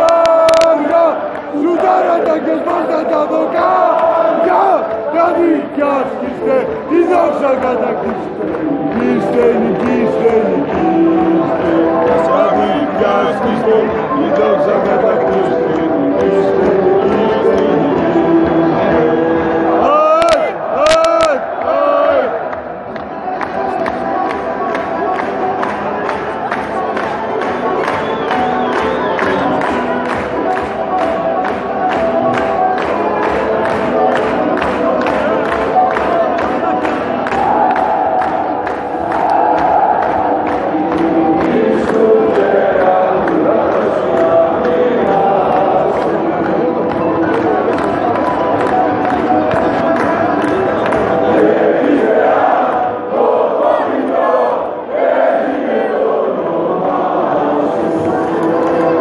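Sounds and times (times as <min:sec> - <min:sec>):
football crowd singing and chanting: 0:00.0 - 0:59.0.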